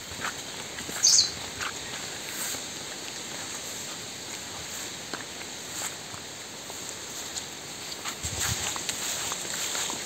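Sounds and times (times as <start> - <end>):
steady forest hiss: 0.0 - 10.0
bird loud high call: 1.0 - 1.4
faint high bird chirps: 1.0 - 1.4.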